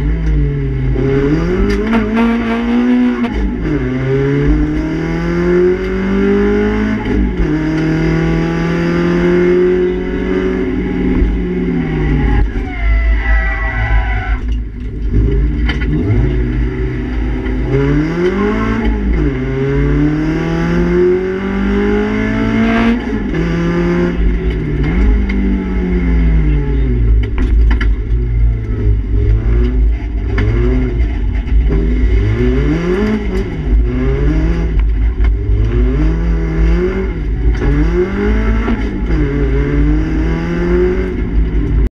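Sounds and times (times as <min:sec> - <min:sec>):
car engine revving: 0:00.0 - 0:41.9.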